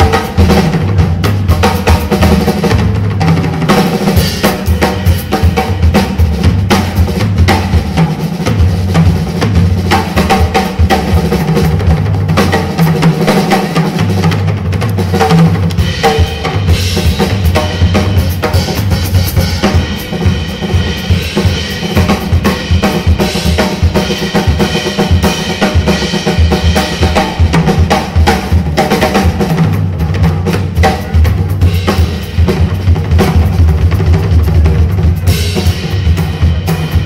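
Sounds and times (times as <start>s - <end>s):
drum kit playing: 0.0s - 37.0s.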